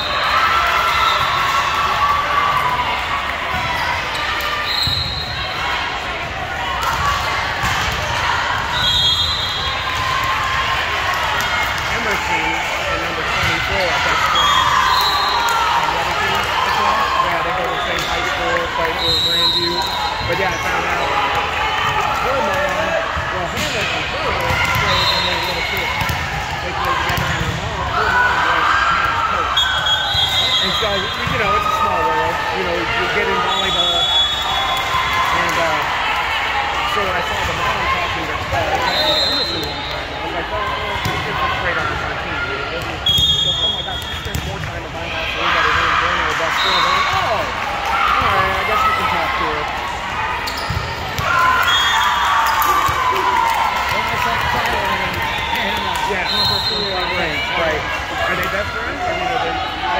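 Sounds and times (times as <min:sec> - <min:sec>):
people chattering and calling out: 0:00.0 - 0:59.9
volleyballs bouncing and hit: 0:21.8 - 0:28.0.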